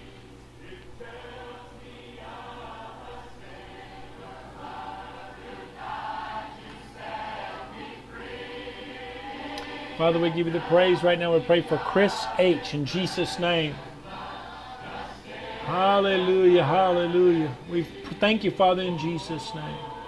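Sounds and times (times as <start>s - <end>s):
faint choir singing: 0.0s - 20.0s
steady low hum: 0.0s - 20.0s.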